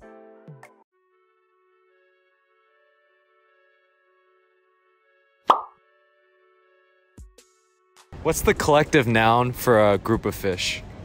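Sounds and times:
soft background music: 0.0s - 10.9s
pop sound effect: 5.5s - 5.8s.

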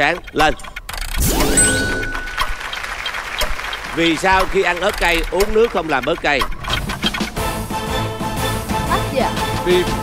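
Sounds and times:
high electronic tone: 1.2s - 2.8s
audience clapping: 2.0s - 6.6s.

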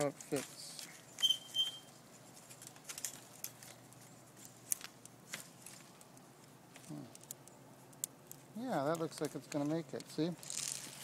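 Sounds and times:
vine cane clicks and rustling: 0.0s - 1.4s, 2.1s - 11.0s.

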